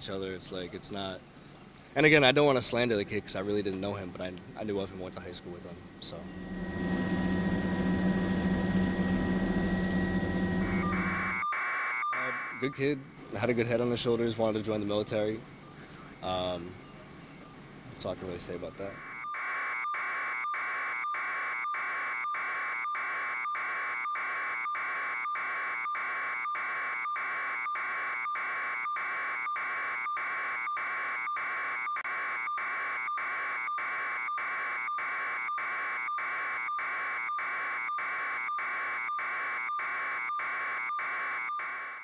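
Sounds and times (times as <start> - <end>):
pulsing buzzing electronic tone: 5.8 - 12.7.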